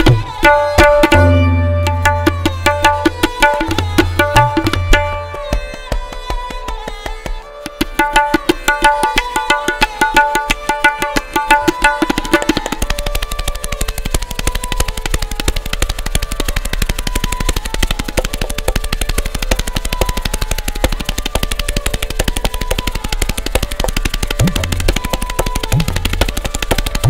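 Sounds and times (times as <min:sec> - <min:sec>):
fast tabla strokes: 0:00.0 - 0:27.0
sarangi repeating melody: 0:00.0 - 0:27.0.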